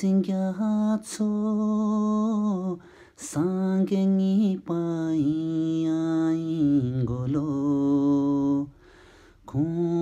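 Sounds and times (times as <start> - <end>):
man singing unaccompanied: 0.0 - 10.0.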